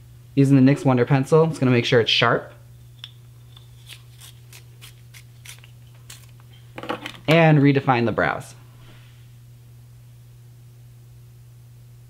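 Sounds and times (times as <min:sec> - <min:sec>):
pencil sharpener scraping: 0:03.5 - 0:06.3.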